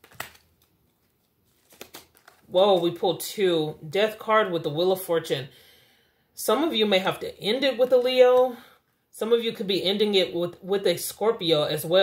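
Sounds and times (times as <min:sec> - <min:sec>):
cards being shuffled: 0:00.0 - 0:02.9.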